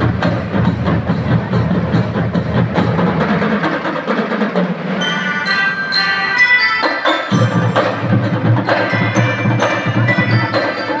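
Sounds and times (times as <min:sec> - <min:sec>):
marching band playing: 0:00.0 - 0:11.0
melodicas: 0:05.0 - 0:11.0.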